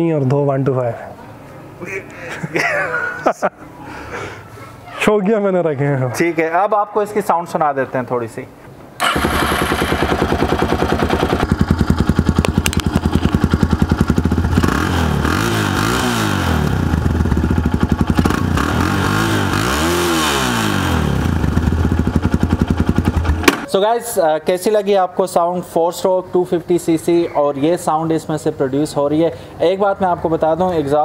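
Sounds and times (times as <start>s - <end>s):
motorcycle engine idling and revving: 9.0s - 23.7s.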